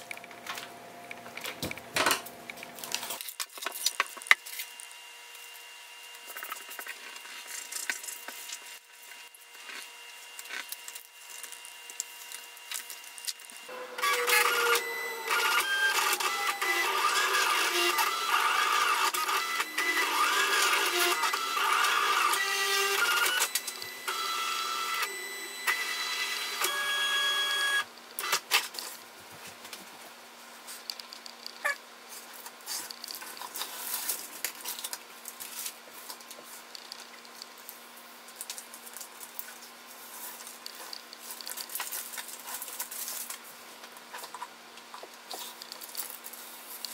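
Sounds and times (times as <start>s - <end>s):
cutting machine motors whining: 8.7s - 28.4s.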